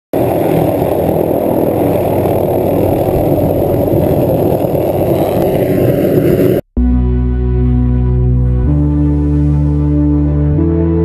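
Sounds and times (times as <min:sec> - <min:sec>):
helicopter lifting off: 0:00.1 - 0:06.7.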